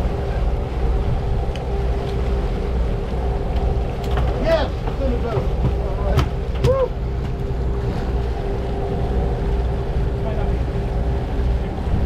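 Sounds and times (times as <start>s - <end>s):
boat engines rumbling: 0.0s - 12.0s
wake water rushing: 0.0s - 12.0s
wind: 0.0s - 12.0s.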